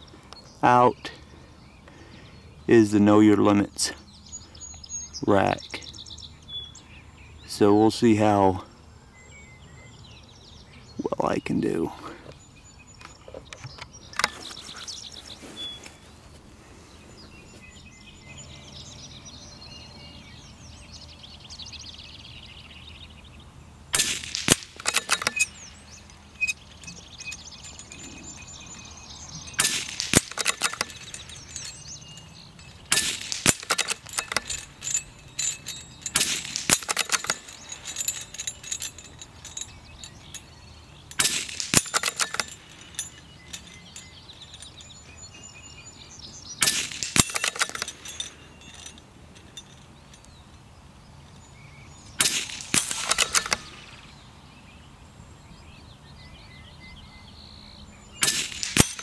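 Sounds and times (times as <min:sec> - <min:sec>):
metallic bolt clicks: 0:24.0 - 0:45.3, 0:46.5 - 0:50.6, 0:52.2 - 0:54.1, 0:58.2 - 0:59.0
rifle shots: 0:52.2 - 0:54.0.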